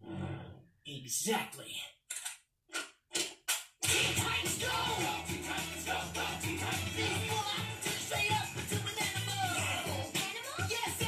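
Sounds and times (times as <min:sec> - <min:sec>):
upbeat song with singing on tv: 0:03.5 - 0:11.0.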